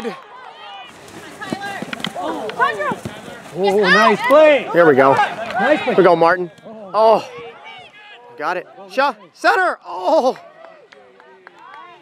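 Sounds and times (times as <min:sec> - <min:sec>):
people shouting and calling: 0:00.0 - 0:10.9.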